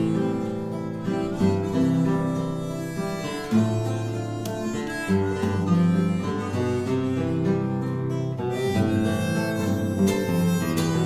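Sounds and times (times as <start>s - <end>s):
acoustic guitar: 0.0s - 11.0s
harmonica melody: 0.0s - 11.0s.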